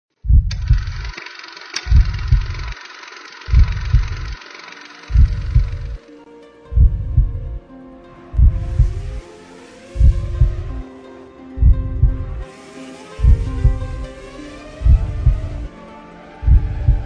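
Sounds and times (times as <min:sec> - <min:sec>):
low heartbeat-like thumps: 0:00.2 - 0:01.0, 0:01.9 - 0:02.8, 0:03.5 - 0:04.4, 0:05.1 - 0:06.0, 0:06.6 - 0:07.6, 0:08.3 - 0:09.2, 0:09.9 - 0:10.8, 0:11.6 - 0:12.4, 0:13.1 - 0:15.7, 0:16.4 - 0:17.0
sharp clicks: 0:00.4 - 0:06.1
held musical tones: 0:00.5 - 0:17.0.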